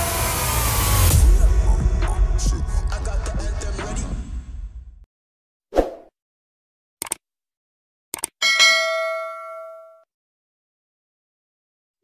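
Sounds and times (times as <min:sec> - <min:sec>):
bright bell ding: 0:08.4 - 0:10.0.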